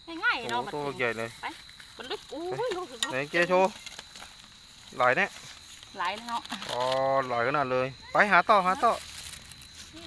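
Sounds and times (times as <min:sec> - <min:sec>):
soil scraping and rustling: 0:00.3 - 0:07.6, 0:08.5 - 0:10.0.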